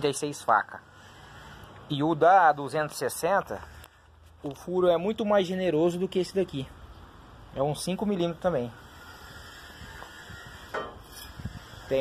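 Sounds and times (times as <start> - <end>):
man speaking: 4.4 - 6.8.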